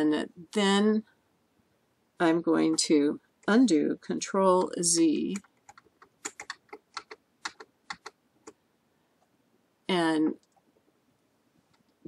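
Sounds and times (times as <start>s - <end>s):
keyboard keys clicking: 5.3s - 8.6s.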